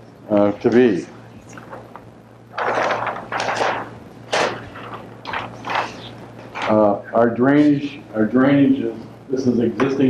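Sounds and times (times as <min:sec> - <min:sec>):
paper sheets rustling and crackling: 0:01.5 - 0:06.8.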